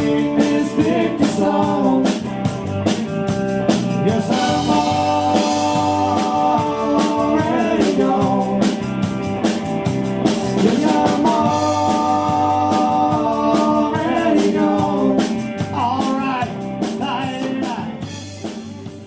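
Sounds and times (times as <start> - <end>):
drum kit beat: 0.0 - 19.0
electric bass: 0.0 - 19.0
electric guitar: 0.0 - 19.0.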